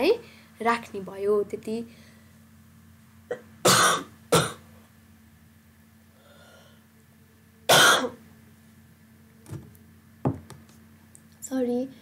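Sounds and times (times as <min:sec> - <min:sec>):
person coughing: 0:03.3 - 0:04.6, 0:07.7 - 0:08.2.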